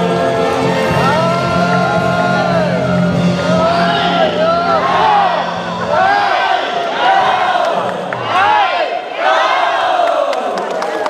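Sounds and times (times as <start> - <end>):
crowd shouting cheers: 0.0 - 11.0.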